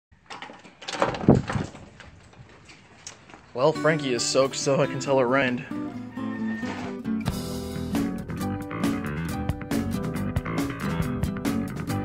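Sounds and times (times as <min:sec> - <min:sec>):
sliding door rattling open: 0:00.3 - 0:02.0.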